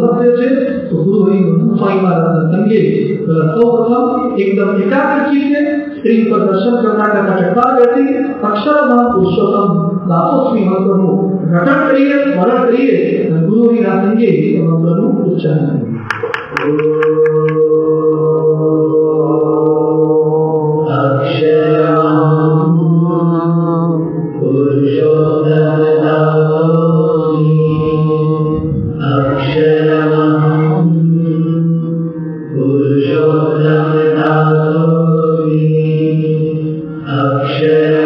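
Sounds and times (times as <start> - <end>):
devotional chanting with music: 0.0 - 38.0
steady drone: 0.0 - 38.0.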